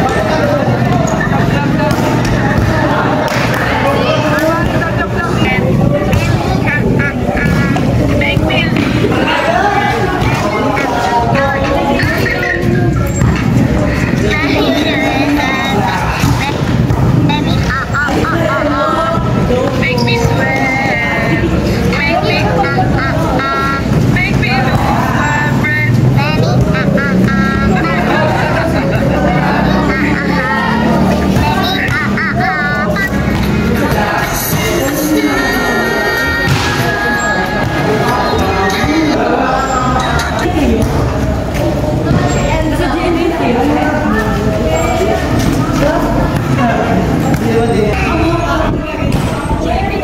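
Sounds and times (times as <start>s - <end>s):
people shouting and calling: 0.0s - 50.0s
volleyball being hit: 1.8s - 12.0s, 36.4s - 39.3s.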